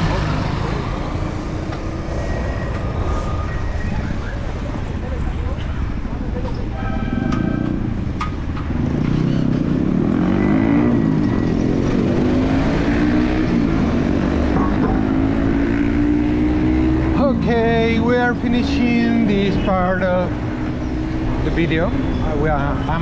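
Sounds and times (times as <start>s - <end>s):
street traffic: 0.0s - 23.0s
vehicle engine revving: 7.8s - 18.5s.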